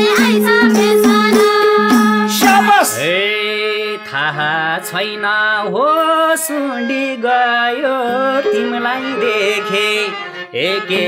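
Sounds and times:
instrumental accompaniment: 0.0s - 3.2s, 7.2s - 11.0s
man singing folk melody: 2.4s - 11.0s.

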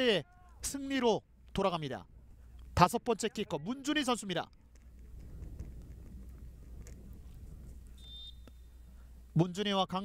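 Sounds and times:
referee's whistle blast: 8.0s - 8.8s.

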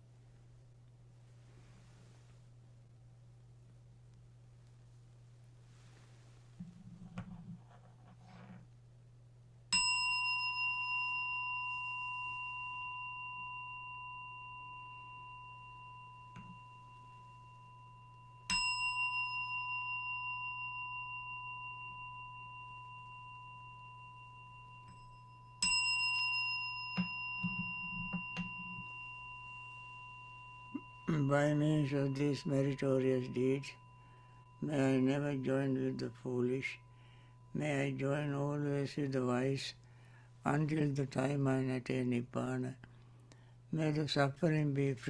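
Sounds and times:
meditation bell ringing: 9.7s - 45.0s.

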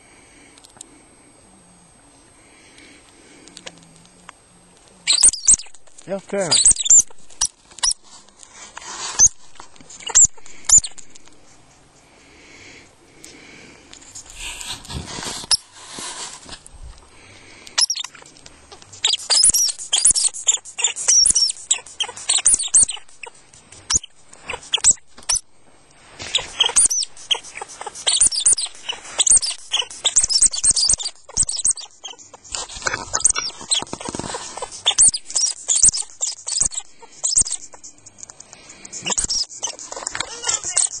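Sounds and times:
lemming squeaking: 5.1s - 8.0s, 17.8s - 25.4s, 26.3s - 41.0s.

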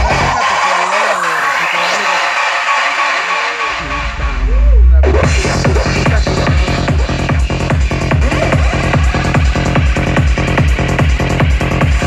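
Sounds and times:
kick drum and bass: 0.0s - 1.1s, 3.8s - 12.0s.

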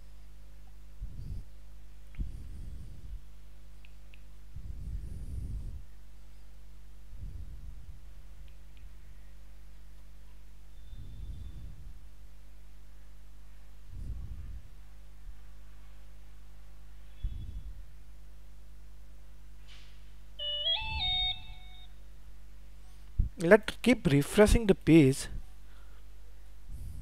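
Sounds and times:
low background hum: 0.0s - 27.0s
electronic notification chime: 20.4s - 21.9s.

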